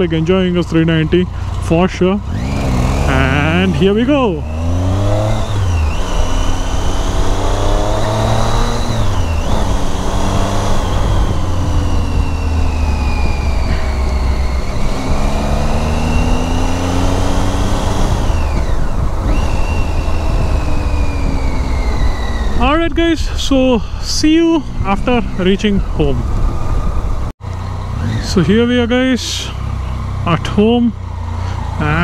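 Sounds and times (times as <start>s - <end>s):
gear changes: 0.0s - 32.0s
motorcycle engine accelerating: 0.0s - 32.0s
wind and road noise: 0.0s - 32.0s.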